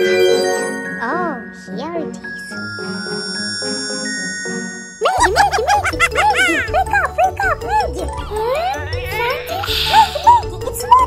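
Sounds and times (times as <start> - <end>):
tinkling sparkle chime: 0.0 - 6.4
children's background music: 0.0 - 11.0.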